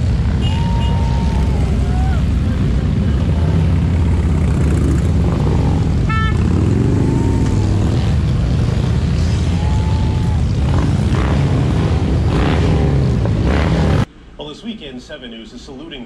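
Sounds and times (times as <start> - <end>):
motorcycle engines rumbling past: 0.0 - 14.1.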